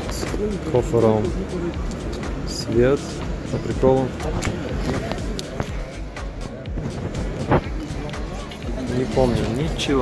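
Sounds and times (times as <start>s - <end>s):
background music: 0.0s - 10.0s
crowd chatter: 0.0s - 10.0s.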